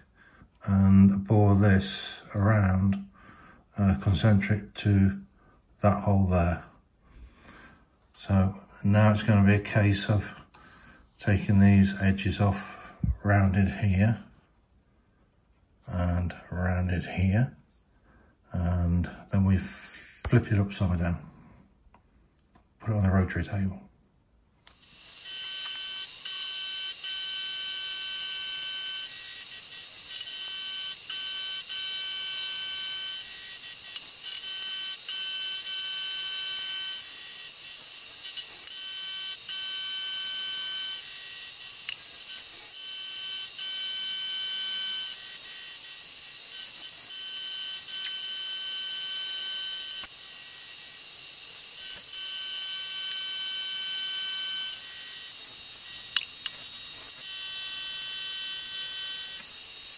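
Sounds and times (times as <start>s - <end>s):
milling machine whine: 24.7s - 59.9s.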